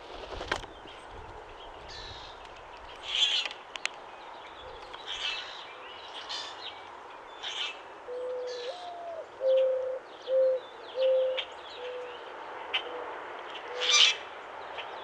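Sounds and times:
bird low hooting notes: 8.1 - 12.2.

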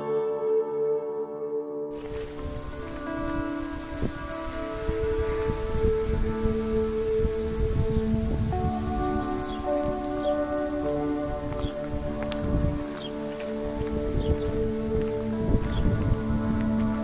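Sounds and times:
calm background music: 0.0 - 17.0.

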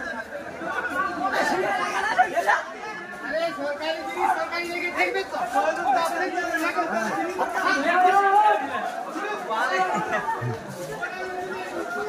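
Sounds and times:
several voices chattering: 0.0 - 12.0.

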